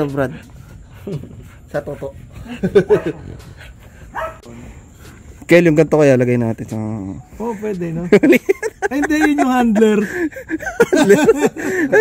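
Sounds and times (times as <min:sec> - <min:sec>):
dog panting: 0:00.0 - 0:05.5
man laughing: 0:02.2 - 0:03.6, 0:07.9 - 0:12.0.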